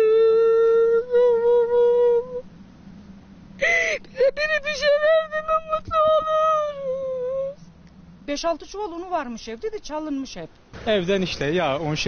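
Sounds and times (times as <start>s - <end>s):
woman weeping and wailing: 3.6s - 7.6s.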